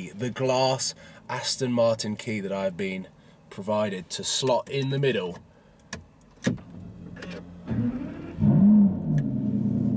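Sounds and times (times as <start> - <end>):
car engine starting and revving: 6.6 - 9.9.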